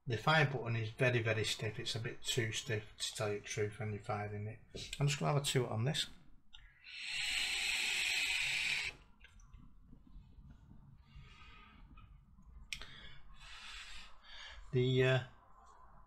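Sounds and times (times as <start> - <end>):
breathy exhale: 6.7 - 9.0, 12.8 - 14.7
vape airy hiss: 6.8 - 9.0.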